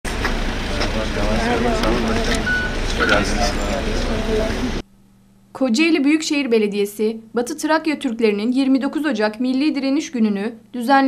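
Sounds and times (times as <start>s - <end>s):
people chatting indistinctly: 0.6s - 4.8s.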